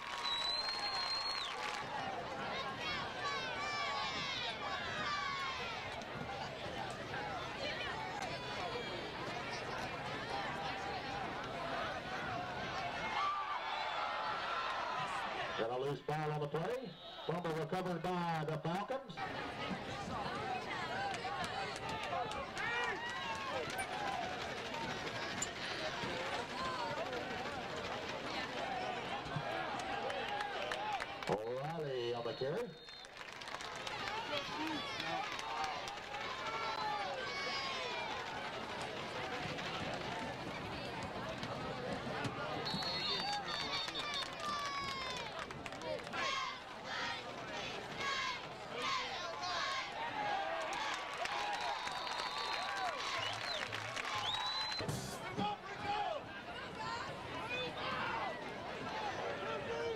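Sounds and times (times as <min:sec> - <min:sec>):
crowd of spectators talking: 0:00.0 - 0:59.9.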